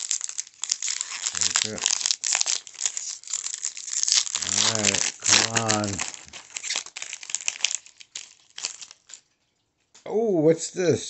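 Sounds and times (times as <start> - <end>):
foil wrapper crinkling: 0.0 - 9.6.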